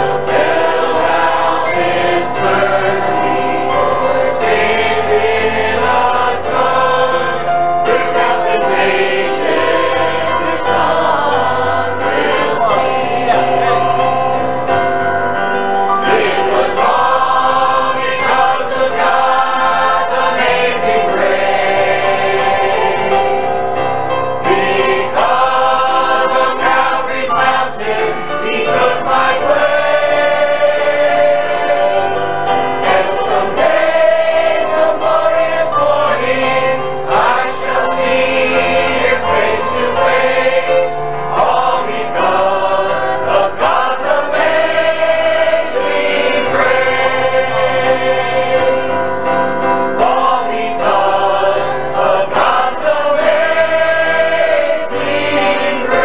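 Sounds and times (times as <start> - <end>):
choir singing gospel: 0.0 - 56.0.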